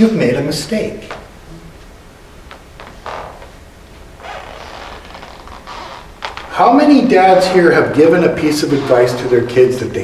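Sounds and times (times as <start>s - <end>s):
stage floor creaking under footsteps: 1.0s - 6.7s, 8.6s - 9.6s.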